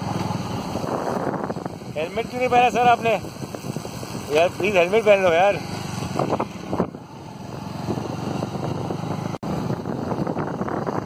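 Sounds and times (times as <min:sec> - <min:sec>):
vehicle engine rumble: 0:00.0 - 0:11.0
wind buffeting microphone: 0:00.0 - 0:11.0.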